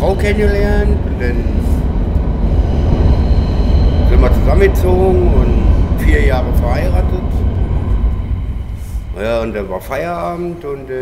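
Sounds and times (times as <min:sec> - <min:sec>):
faint high whine: 0:00.0 - 0:11.0
passing vehicle rumble: 0:00.0 - 0:11.0.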